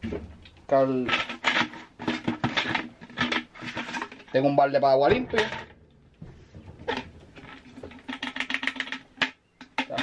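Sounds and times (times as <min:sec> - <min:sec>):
knock on plastic bucket: 0:05.0 - 0:08.5.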